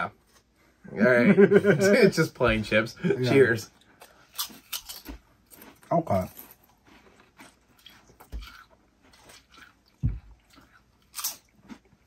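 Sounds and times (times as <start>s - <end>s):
people chewing: 3.7s - 12.0s
potato chips crunching: 7.1s - 12.0s.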